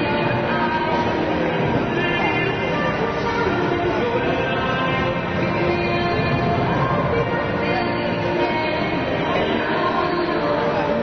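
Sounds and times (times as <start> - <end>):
music over loudspeakers: 0.0 - 11.0.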